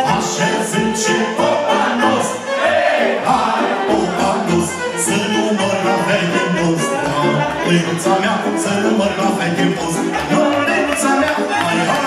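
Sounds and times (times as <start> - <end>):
live band music: 0.0 - 12.0
men singing in chorus: 0.0 - 12.0.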